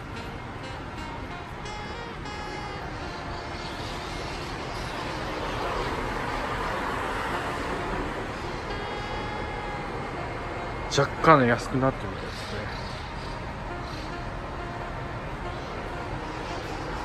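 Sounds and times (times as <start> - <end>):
outdoor street noise: 0.0 - 17.0
vehicle passing: 0.0 - 17.0.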